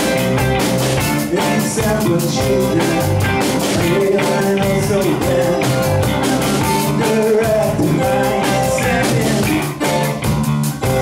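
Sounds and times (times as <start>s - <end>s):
bending lead guitar melody: 0.0s - 11.0s
rock band playing: 0.0s - 11.0s.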